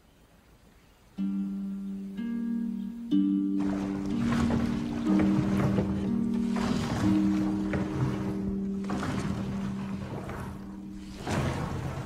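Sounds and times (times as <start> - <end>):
oars working: 2.8 - 12.0
water lapping: 3.6 - 12.0.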